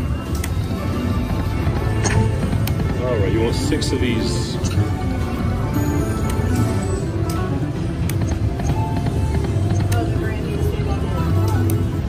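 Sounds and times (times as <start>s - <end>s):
slot machine game music: 0.0s - 12.0s.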